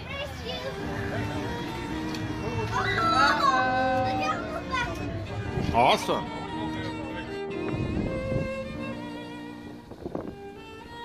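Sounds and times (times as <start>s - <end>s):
background music: 0.0s - 11.0s
people talking: 2.4s - 7.4s
child calling out: 2.7s - 5.0s.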